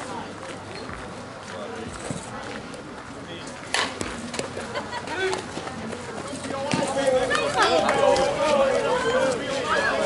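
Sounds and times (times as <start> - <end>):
players and spectators shouting: 6.5 - 10.0.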